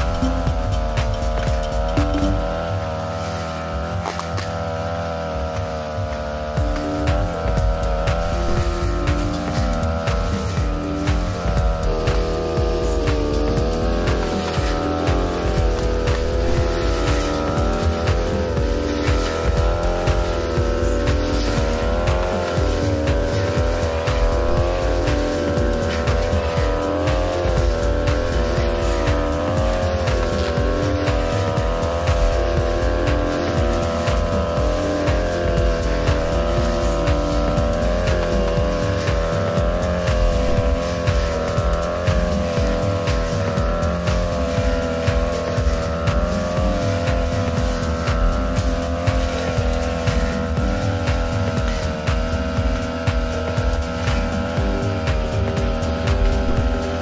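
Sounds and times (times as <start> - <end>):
brush cutter engine at high revs: 0.0 - 57.0.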